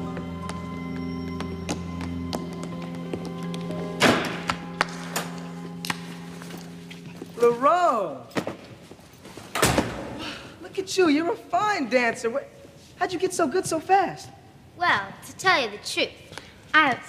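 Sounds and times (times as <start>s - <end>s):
background music of held notes: 0.0s - 7.8s
loud thud: 4.0s - 4.5s.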